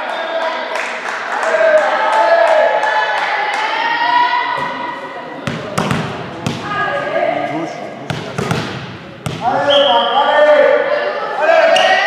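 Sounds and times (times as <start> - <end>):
volleyball smacks with echo: 5.4 - 6.8, 8.1 - 9.6.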